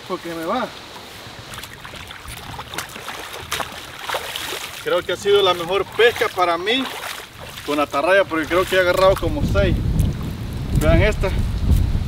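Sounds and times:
hands splashing river water: 0:00.4 - 0:10.8.

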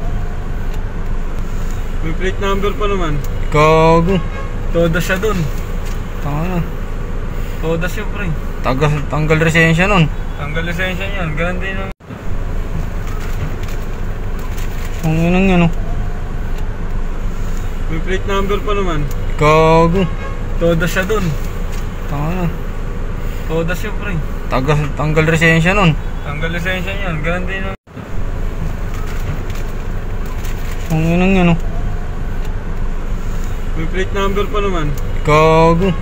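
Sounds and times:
car engines rumbling: 0:00.0 - 0:36.0.

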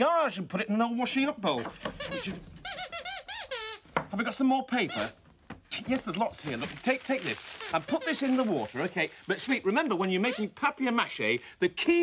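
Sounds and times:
puppet squeaker squeaks: 0:02.0 - 0:03.9, 0:04.8 - 0:05.2, 0:07.6 - 0:08.3, 0:09.4 - 0:10.6.

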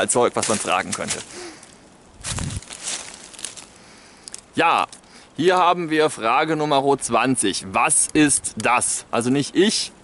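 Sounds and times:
footsteps in dry leaves: 0:00.0 - 0:03.9.

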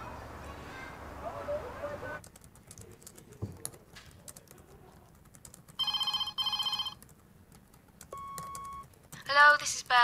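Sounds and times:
electronic telephone ringing: 0:05.8 - 0:07.0
electronic beep: 0:08.2 - 0:08.9.

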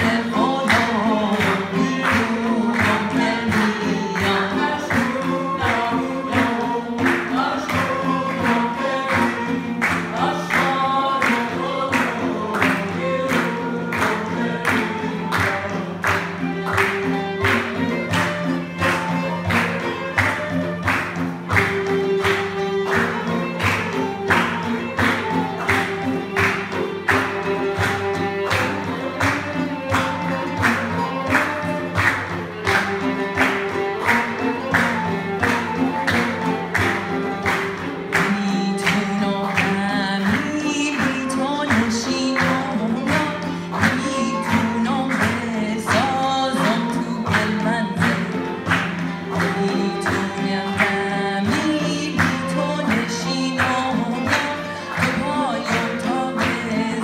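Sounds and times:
woman singing: 0:00.0 - 0:16.2, 0:38.1 - 0:57.0
hand drums beating: 0:00.0 - 0:57.0
oud: 0:00.0 - 0:57.0
violin: 0:00.0 - 0:57.0.

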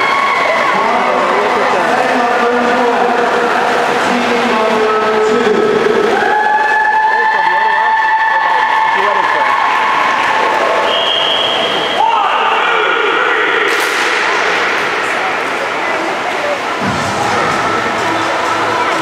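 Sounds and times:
crowd chatter in echoing hall: 0:00.0 - 0:19.0.

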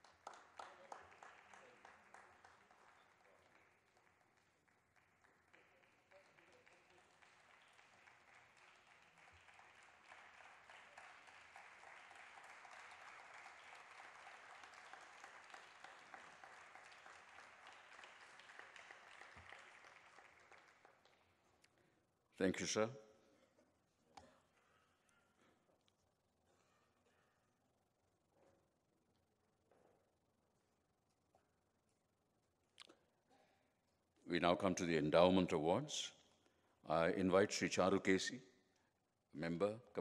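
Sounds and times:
faint audience applause: 0:00.0 - 0:21.3.

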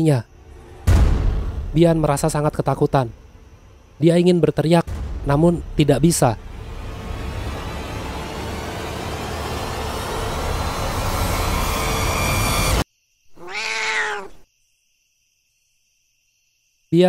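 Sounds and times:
dense noisy horror swell: 0:05.0 - 0:11.8
cat meowing: 0:13.3 - 0:14.4.

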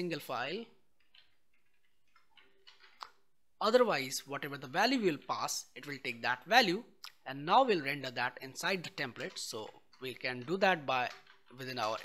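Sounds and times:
keyboard and mouse clicks: 0:01.0 - 0:03.3.

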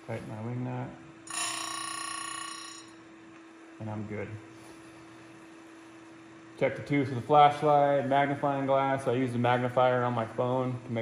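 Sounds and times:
electrical hum: 0:00.0 - 0:11.0
bell-like ringing tone: 0:01.3 - 0:03.0.

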